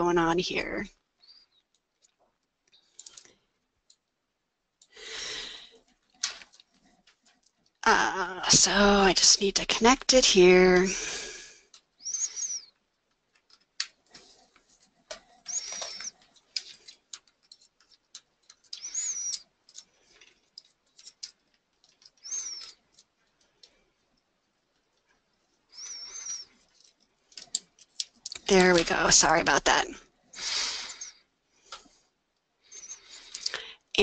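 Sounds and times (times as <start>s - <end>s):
nasal breaths with whistle: 4.9s - 5.8s, 10.9s - 12.7s, 15.3s - 16.2s, 18.8s - 19.4s, 25.7s - 26.6s, 30.3s - 33.9s
cable clicks and taps: 26.7s - 28.9s.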